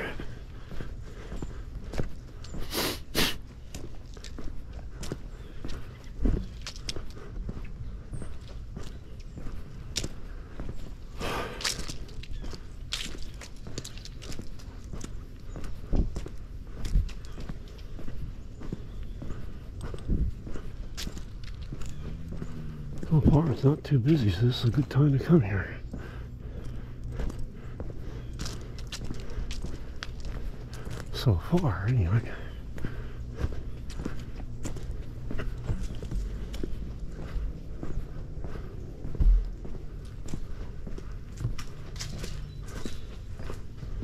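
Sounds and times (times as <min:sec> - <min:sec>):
footsteps on outdoor trail: 0:00.0 - 0:44.0.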